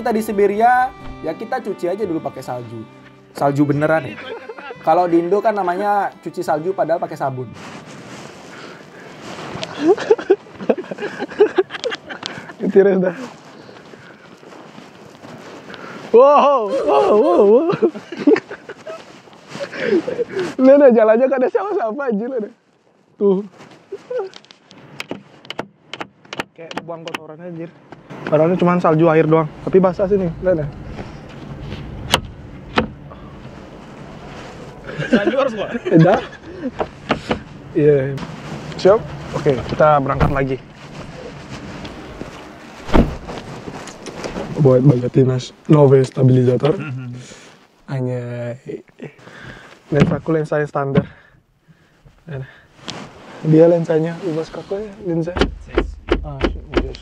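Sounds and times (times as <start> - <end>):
steady outdoor hiss: 0.0 - 57.0
car door shutting: 1.0 - 1.2, 30.8 - 33.6, 36.7 - 37.6, 39.6 - 40.6, 42.8 - 44.4, 55.3 - 57.0.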